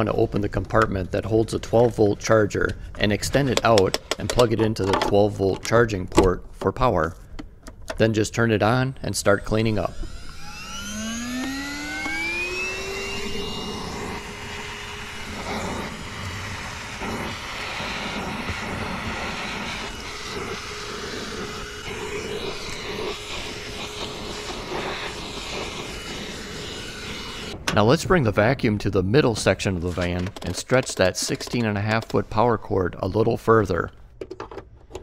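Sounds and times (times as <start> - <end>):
handheld vacuum motor whine: 8.5 - 27.6
suction air over carpet: 8.7 - 27.6.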